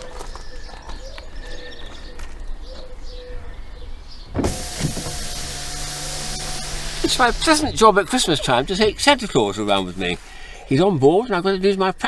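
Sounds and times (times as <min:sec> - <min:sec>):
car road and engine noise: 0:04.2 - 0:10.8.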